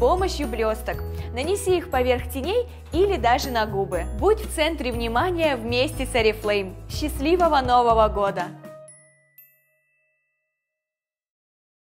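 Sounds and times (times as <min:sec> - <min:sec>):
faint ringing chime: 0:08.9 - 0:10.8.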